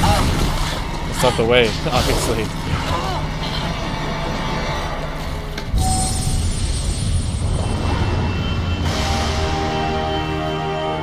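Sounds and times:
low steady drone: 0.0s - 11.0s
loud deep hit: 5.7s - 10.4s
held orchestral chords: 7.8s - 11.0s.

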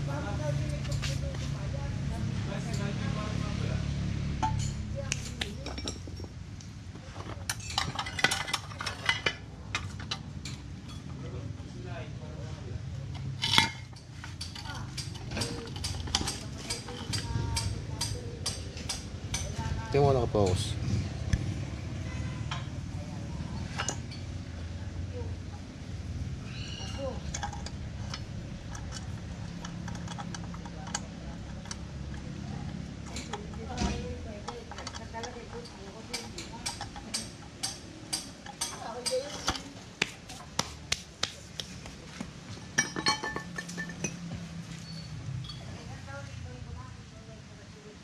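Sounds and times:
metal parts clinking: 7.5s - 11.1s, 13.3s - 17.7s, 26.8s - 39.7s, 42.7s - 44.2s.

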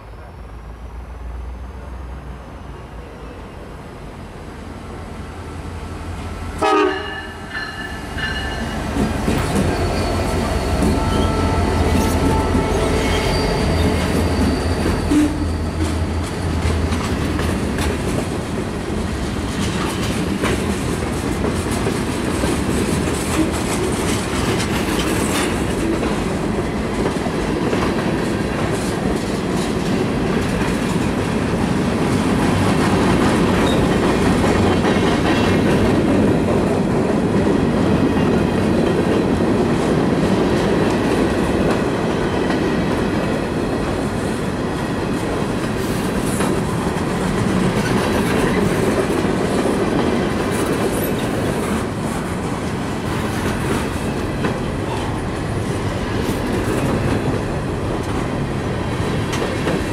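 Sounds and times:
diesel locomotive engine hum: 0.0s - 59.9s
train wheels on rails: 1.0s - 59.9s
clickety-clack over rail joints: 6.9s - 59.9s.

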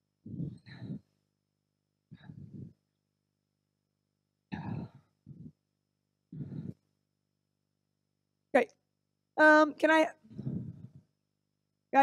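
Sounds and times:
short indistinct vocal sounds: 4.5s - 5.6s.

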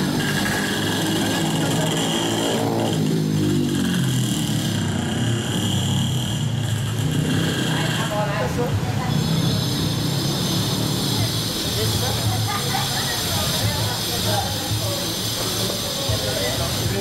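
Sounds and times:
motorcycle passing: 0.0s - 17.0s
street noise: 0.0s - 17.0s.

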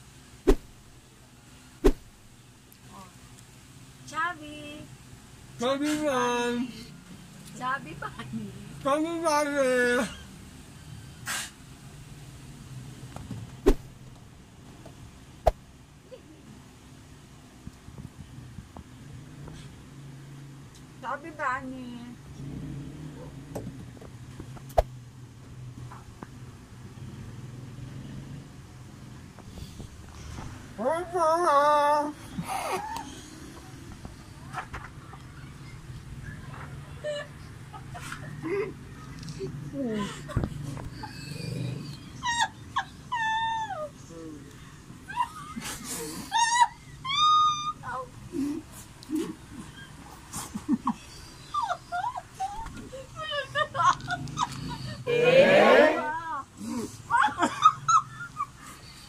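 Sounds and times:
steady low hum: 0.0s - 8.9s
squealing laughter: 36.3s - 44.0s, 45.1s - 47.9s, 49.1s - 55.2s, 57.1s - 59.0s.

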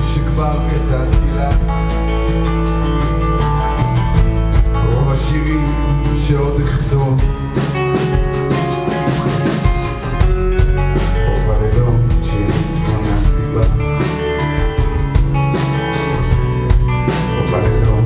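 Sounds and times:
drum kit beat: 0.0s - 18.0s
strummed acoustic guitar: 0.0s - 18.0s.

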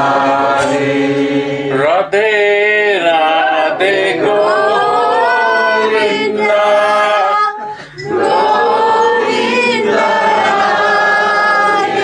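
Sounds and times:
group singing a chant: 0.0s - 12.0s.

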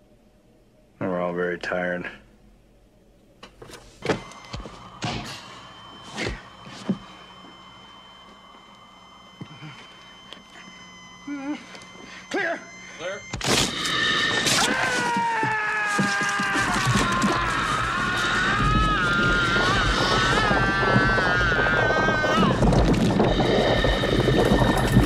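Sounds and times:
high electronic whine: 2.6s - 25.0s
loud burst with shrill falling tones: 4.2s - 25.0s.

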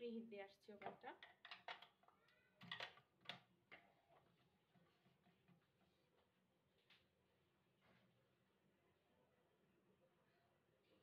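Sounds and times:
faint clicks and knocks: 0.8s - 7.1s.

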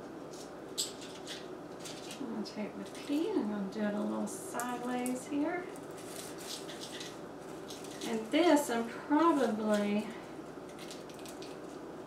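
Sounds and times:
artificial foliage rustling: 0.2s - 12.0s.

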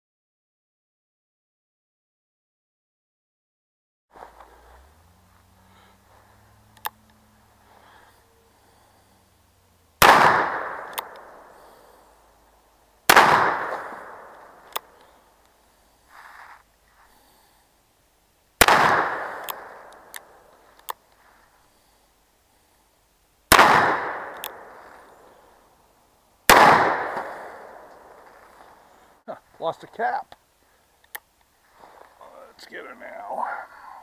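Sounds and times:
gunshots with echo: 10.0s - 11.8s, 13.1s - 14.7s, 18.6s - 20.4s, 23.5s - 25.0s, 26.5s - 28.2s.

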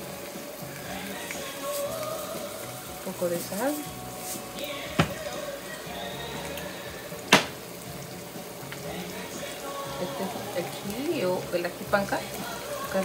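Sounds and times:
sauce frying in a pan: 0.0s - 13.0s.

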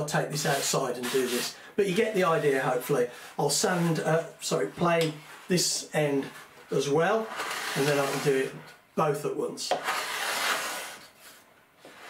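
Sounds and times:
sandpaper rubbing wood: 0.3s - 2.7s, 7.2s - 8.6s, 9.7s - 12.0s.

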